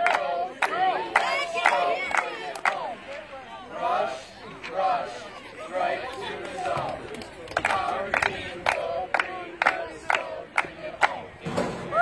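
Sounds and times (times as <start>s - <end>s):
group clapping in unison: 0.0s - 2.9s, 6.0s - 11.3s.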